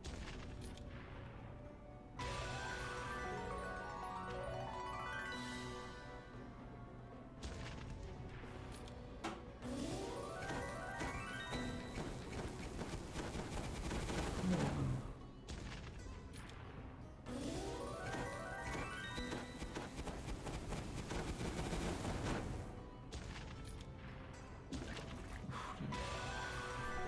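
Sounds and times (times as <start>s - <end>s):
game music: 0.0s - 27.0s.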